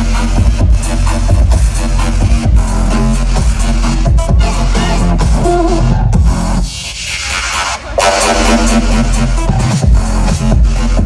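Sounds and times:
electronic dance music: 0:00.0 - 0:11.0
rising sweep: 0:07.2 - 0:09.7.

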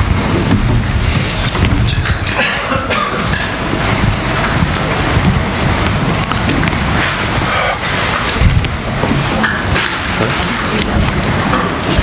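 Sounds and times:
rumbling and rustling on microphone: 0:00.0 - 0:12.0.

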